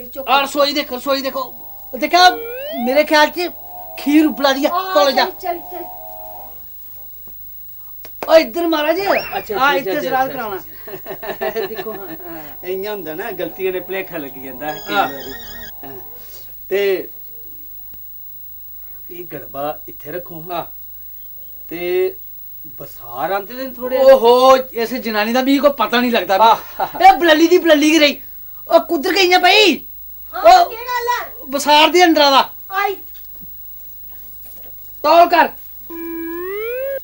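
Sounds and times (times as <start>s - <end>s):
low hum and hiss: 0.0s - 37.0s
cat meowing: 12.3s - 16.4s.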